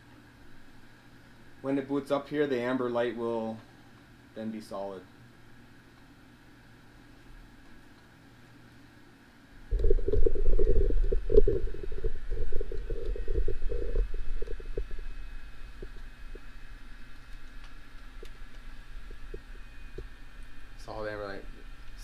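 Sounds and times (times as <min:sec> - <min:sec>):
low steady hum: 0:00.0 - 0:22.0
faint ticks: 0:09.7 - 0:20.1.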